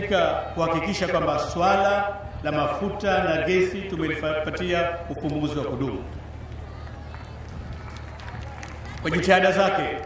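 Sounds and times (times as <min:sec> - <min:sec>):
public address system hum: 0:00.0 - 0:10.0.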